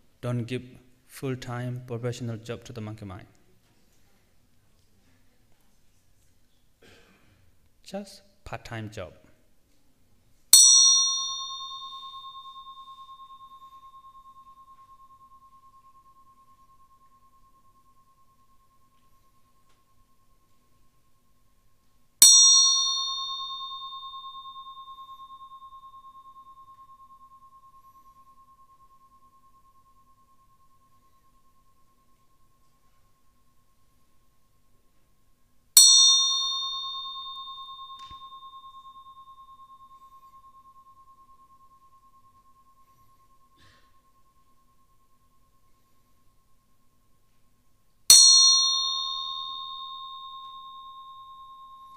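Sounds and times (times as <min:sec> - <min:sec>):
meditation bell ringing: 0:10.5 - 0:51.9.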